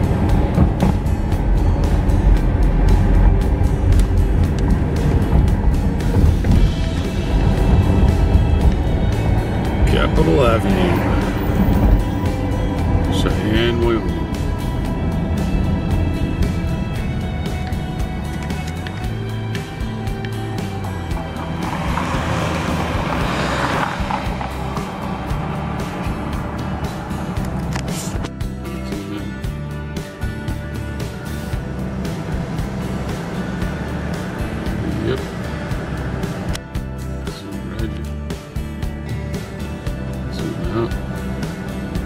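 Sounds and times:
car road noise: 0.0 - 42.0.

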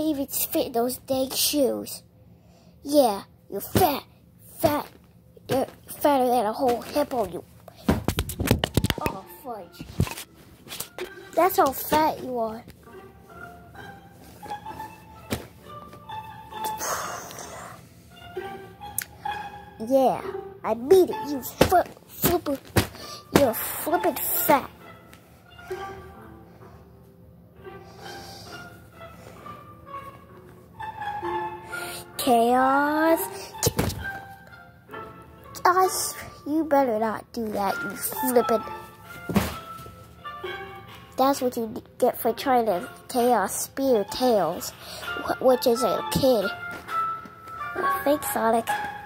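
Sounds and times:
plush toys rustling: 3.6 - 16.2, 21.4 - 24.4
background music: 8.5 - 49.0
sharp thunk: 33.6 - 34.0.

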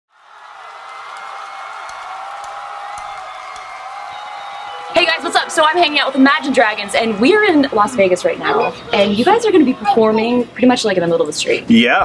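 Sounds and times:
crowd cheering and applauding: 0.1 - 9.9.

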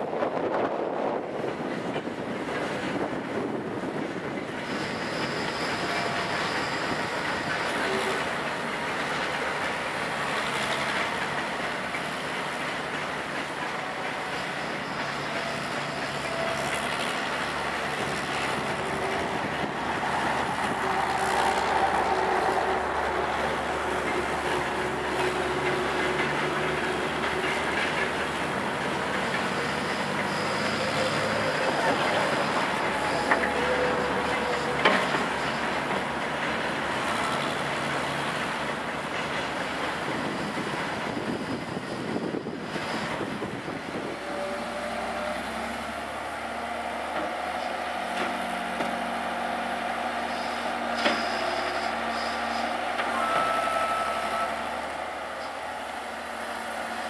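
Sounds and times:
diesel engine under load: 0.0 - 57.0
faint hydraulic whine: 50.2 - 57.0.

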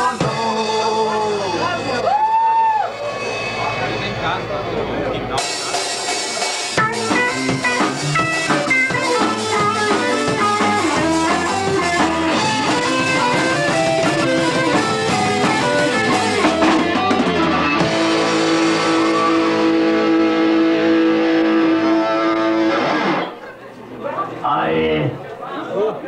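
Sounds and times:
heavy metal band playing live: 0.0 - 23.4
guitar chord ringing: 6.8 - 23.4.

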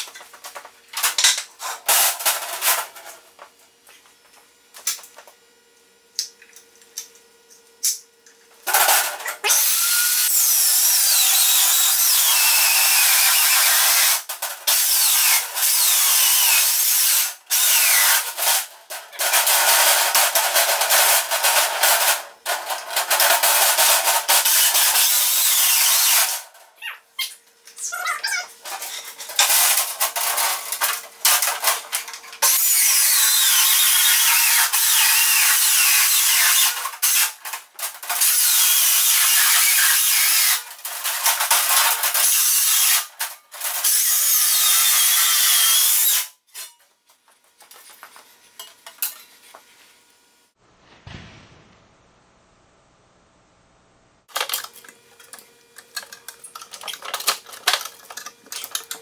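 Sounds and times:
circular saw cutting metal: 8.7 - 21.3, 23.4 - 26.4, 32.4 - 37.4, 38.1 - 43.2.

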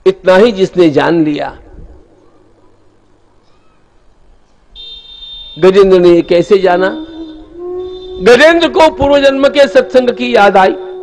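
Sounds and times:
faint wavering sounds: 1.4 - 4.1, 6.3 - 11.0
public address system hum: 5.5 - 11.0.

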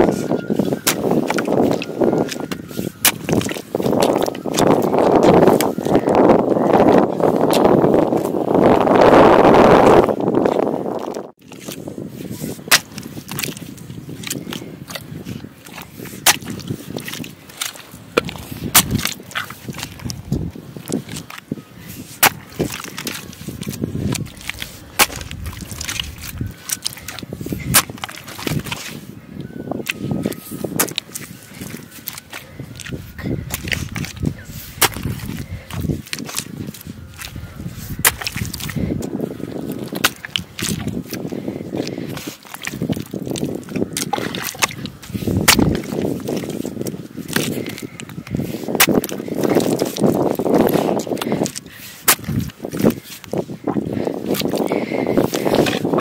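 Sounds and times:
hoe chopping wet mud: 0.0 - 6.2, 12.6 - 21.4, 22.0 - 29.0, 29.8 - 53.4, 54.0 - 56.0.

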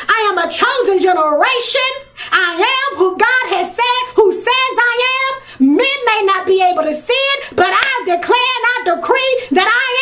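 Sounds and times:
woman speaking in sing-song voice: 0.0 - 10.0.

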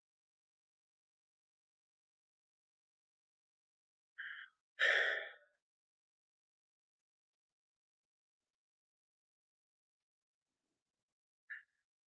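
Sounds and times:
man breathing out: 4.2 - 5.4.

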